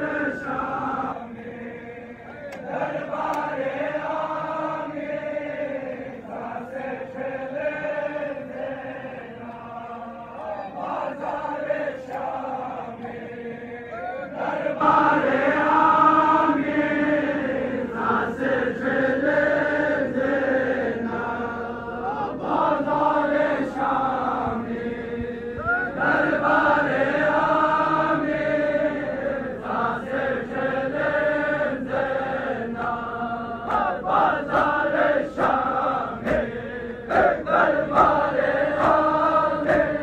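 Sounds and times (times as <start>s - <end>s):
men chanting a lament: 0.0s - 40.0s.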